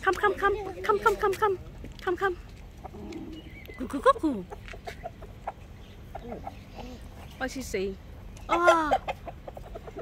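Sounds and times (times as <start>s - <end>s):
rooster clucking: 4.0s - 7.2s, 8.4s - 10.0s.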